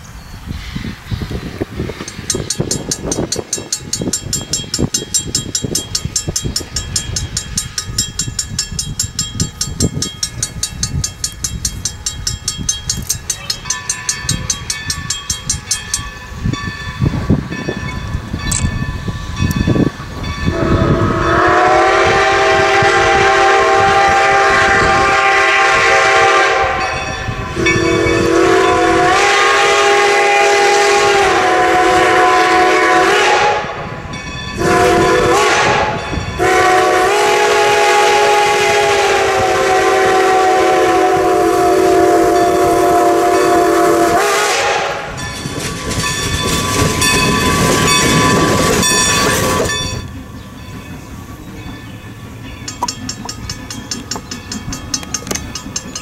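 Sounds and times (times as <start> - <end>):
train running on rails: 0.0 - 56.0
steam locomotive chime whistle: 2.0 - 56.0.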